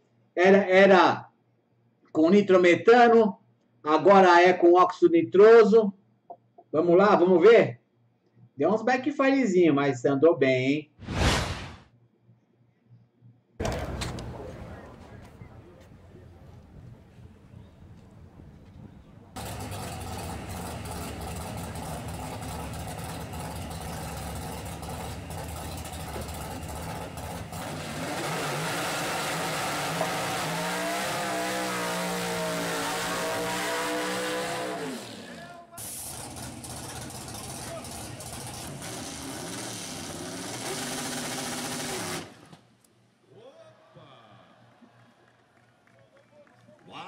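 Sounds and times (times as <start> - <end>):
drag car engine revving: 19.4 - 42.6.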